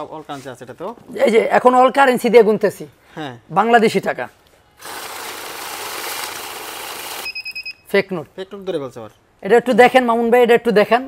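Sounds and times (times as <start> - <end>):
bill counter whirring: 4.8 - 7.4
high alarm beeps: 7.2 - 7.9.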